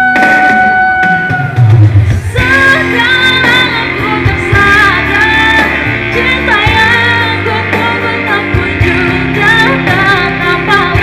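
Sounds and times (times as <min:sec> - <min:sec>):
electric keyboard accompaniment: 0:00.0 - 0:11.0.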